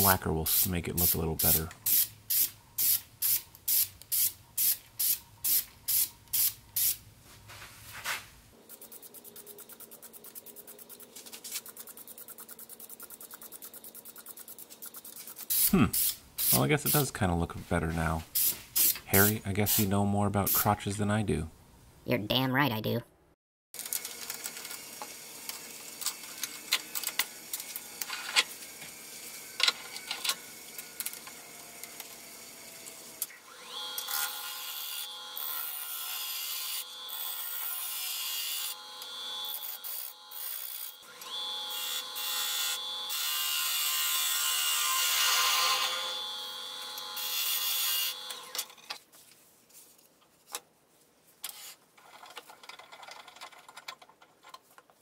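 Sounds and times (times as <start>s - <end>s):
wood lathe whining: 24.2s - 48.8s.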